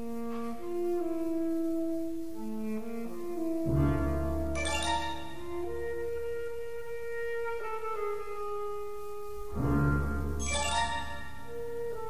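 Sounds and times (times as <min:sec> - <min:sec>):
woodwind holding long notes: 0:00.0 - 0:12.0.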